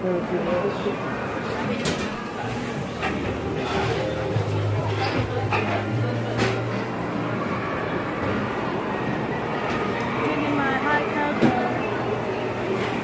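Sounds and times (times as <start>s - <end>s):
murmuring voices: 0.0s - 13.0s.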